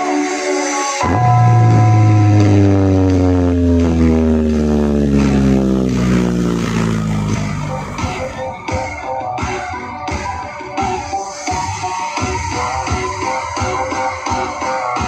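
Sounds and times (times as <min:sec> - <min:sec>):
loud dance music: 0:00.0 - 0:15.0
heavy bass note falling pitch: 0:01.0 - 0:09.0
beat: 0:01.0 - 0:15.0.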